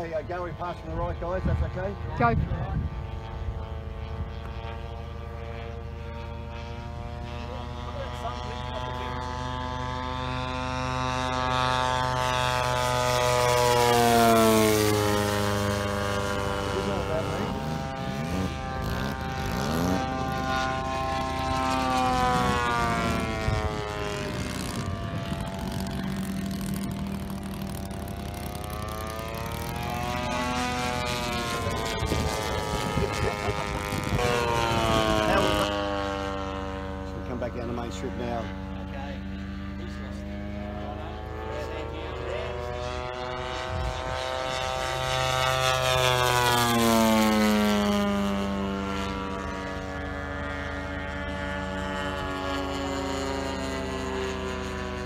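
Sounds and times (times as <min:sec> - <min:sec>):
model airplane engine passing: 0:00.0 - 0:55.0.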